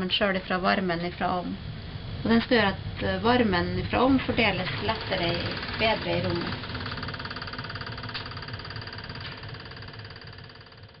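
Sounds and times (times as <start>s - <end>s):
mechanical running hum: 0.0s - 11.0s.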